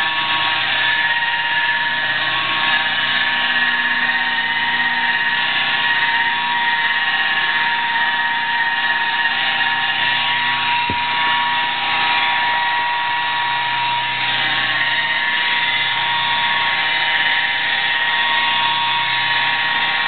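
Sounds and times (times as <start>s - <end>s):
electric polisher whining: 0.0s - 20.0s.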